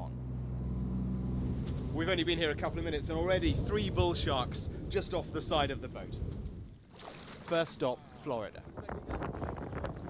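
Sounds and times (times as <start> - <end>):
motorboat engine running: 0.0 - 2.2
water rushing along hull: 6.6 - 9.3.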